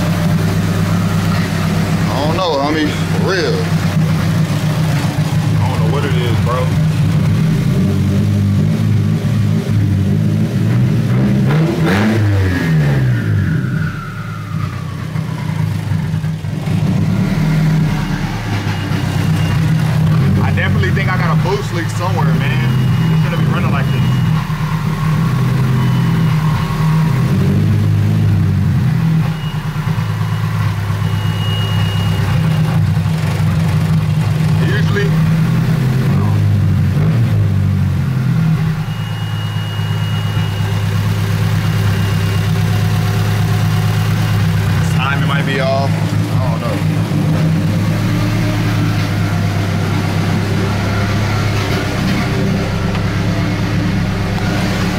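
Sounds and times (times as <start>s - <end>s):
car engine idling roughly: 0.0s - 10.6s, 13.9s - 37.0s, 37.7s - 54.9s.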